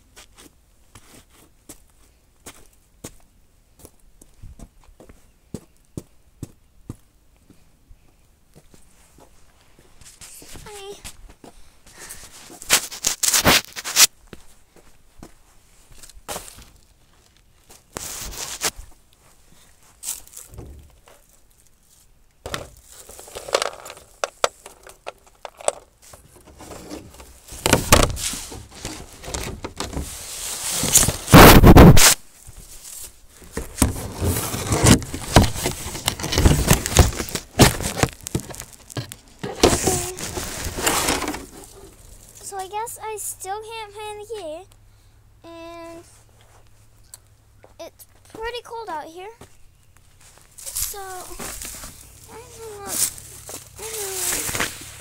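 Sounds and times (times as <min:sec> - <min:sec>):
rummaging through dry leaves: 0:26.4 - 0:31.4, 0:32.6 - 0:42.4, 0:50.2 - 0:55.0.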